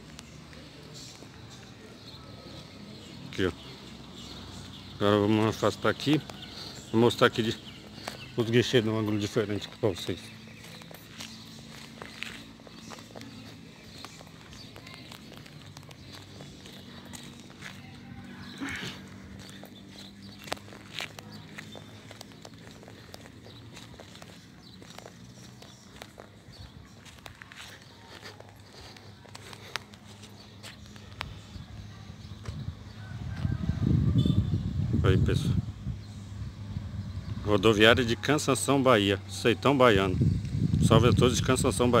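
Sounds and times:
footsteps on pavement: 0.0s - 34.3s.

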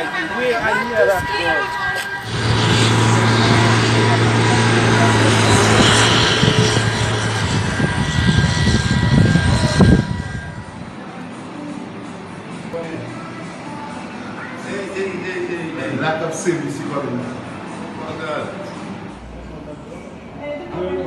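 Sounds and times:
loud rushing noise: 0.0s - 11.3s
low engine drone: 0.0s - 11.3s
uneven low rumbling: 0.9s - 11.0s.

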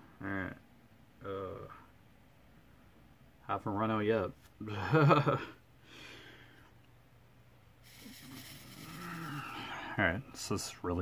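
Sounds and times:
man's low breathy vocal sound: 7.9s - 10.0s.

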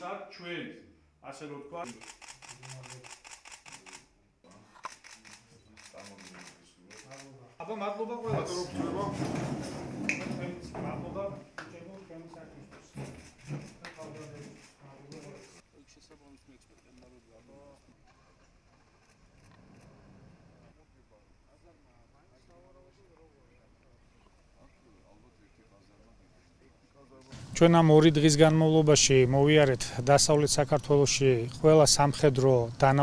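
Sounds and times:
room murmur and voices: 0.0s - 33.0s.

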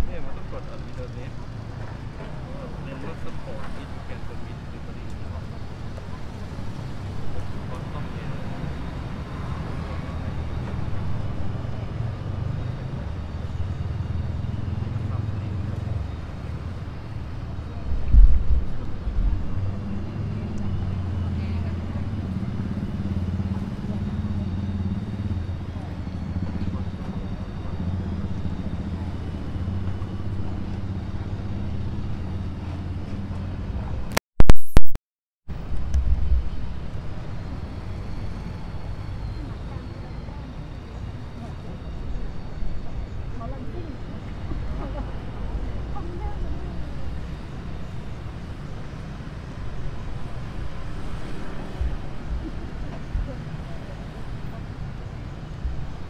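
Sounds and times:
faint voices: 0.0s - 34.1s, 36.8s - 56.0s
traffic and motorbikes rumbling: 0.0s - 34.2s, 35.5s - 56.0s
loud low thump: 18.1s - 19.4s.

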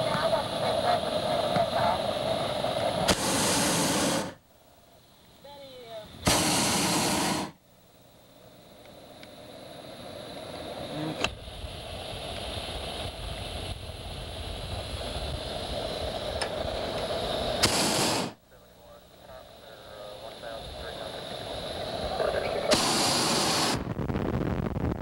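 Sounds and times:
rushing noise: 0.0s - 4.4s, 6.2s - 7.6s, 9.7s - 18.4s, 19.4s - 25.0s
propane burner blasts: 0.0s - 4.5s, 5.8s - 7.6s, 8.8s - 25.0s.

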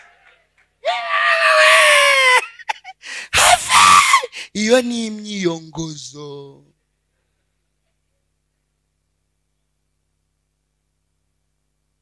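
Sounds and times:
man screaming into a microphone: 0.8s - 2.6s, 3.3s - 4.9s
man shouting loudly: 3.4s - 6.7s.

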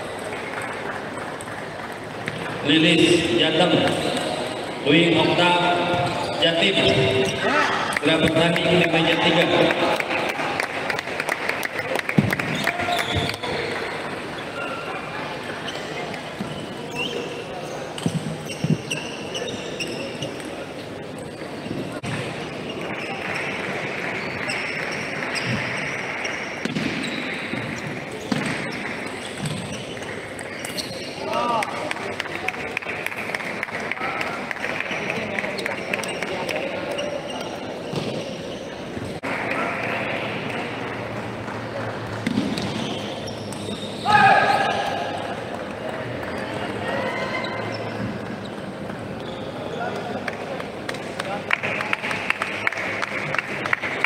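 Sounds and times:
hubbub of voices: 0.0s - 54.0s.

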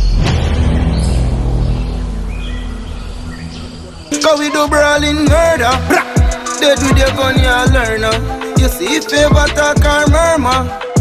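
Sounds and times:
low bass drone: 0.0s - 8.3s.

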